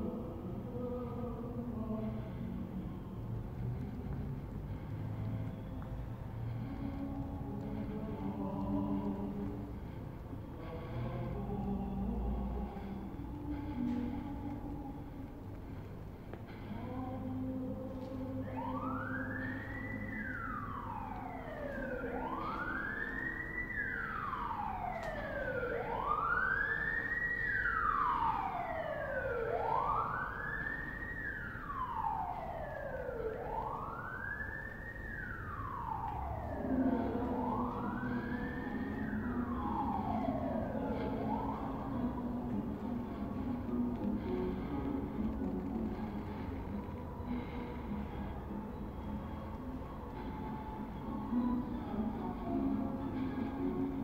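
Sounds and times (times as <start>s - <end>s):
steady low hum: 0.0s - 54.0s
wailing siren: 0.0s - 54.0s.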